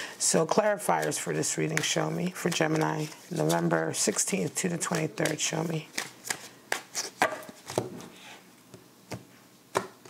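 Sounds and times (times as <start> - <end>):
cards being shuffled: 0.8 - 8.1.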